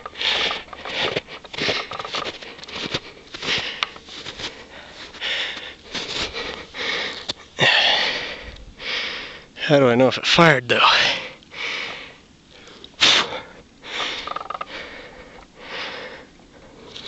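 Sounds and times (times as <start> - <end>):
person breathing hard: 0.0 - 9.6, 10.9 - 17.0.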